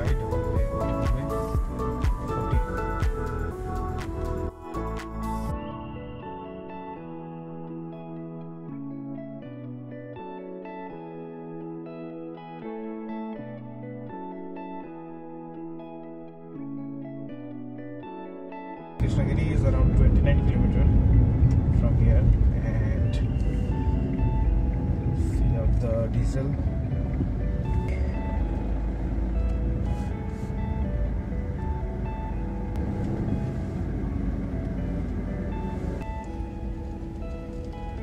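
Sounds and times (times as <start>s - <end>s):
background music: 0.0s - 38.0s
car rumbling on road: 19.0s - 38.0s.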